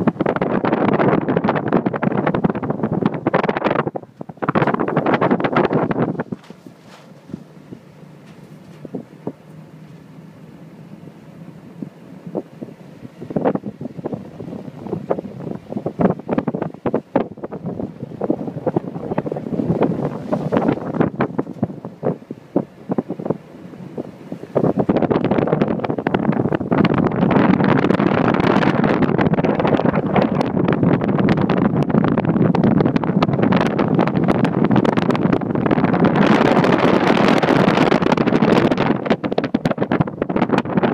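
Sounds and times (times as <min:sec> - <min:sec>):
wind buffeting microphone: 0:00.0 - 0:40.9.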